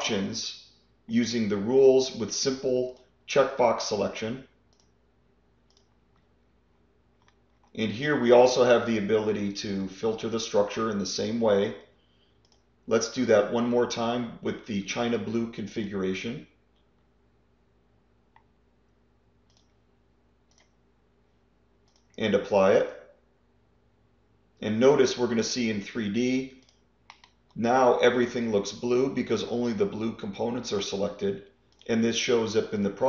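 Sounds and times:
computer mouse clicks: 4.7s - 5.0s, 5.6s - 6.3s, 7.1s - 7.8s, 12.4s - 12.7s, 19.4s - 19.8s, 20.5s - 20.8s, 21.8s - 22.2s, 26.6s - 27.5s, 31.7s - 31.9s.

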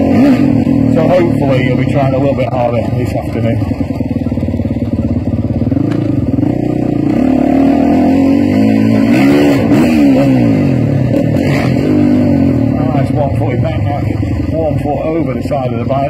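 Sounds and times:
dirt bike engines revving: 0.0s - 16.0s.

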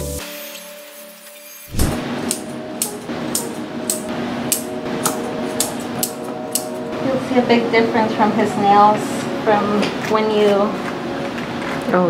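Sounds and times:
background music: 0.0s - 12.0s
steady hum: 1.7s - 12.0s.

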